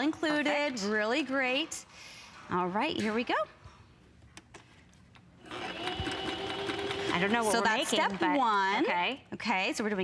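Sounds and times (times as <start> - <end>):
sewing machine running: 5.4 - 8.7.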